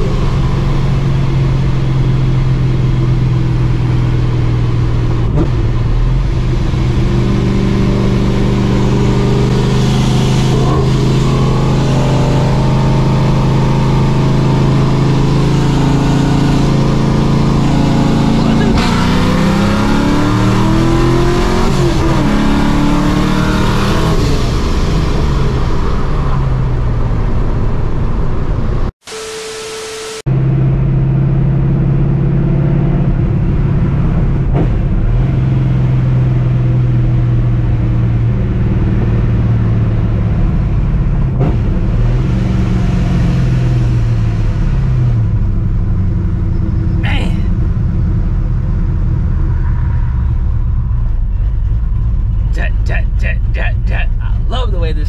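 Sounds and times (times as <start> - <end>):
car engine revving: 0.0 - 55.0
static buzz: 29.0 - 30.3.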